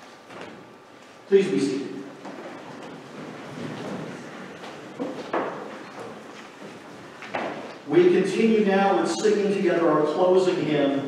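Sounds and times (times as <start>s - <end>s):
pews and clothing rustling: 2.1s - 7.9s.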